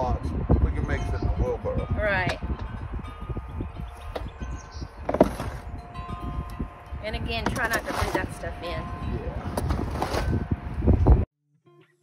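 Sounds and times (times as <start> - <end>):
shovel scraping soil: 7.5 - 8.4, 9.5 - 10.4.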